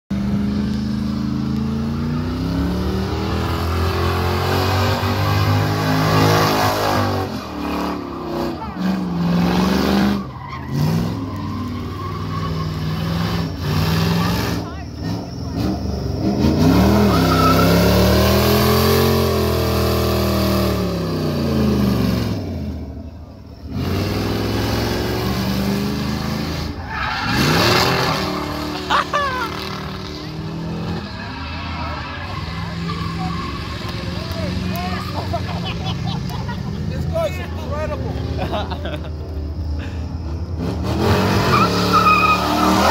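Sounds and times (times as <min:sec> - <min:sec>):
car engine revving: 0:00.1 - 0:42.9
tyres screeching: 0:01.7 - 0:20.4, 0:23.4 - 0:42.9.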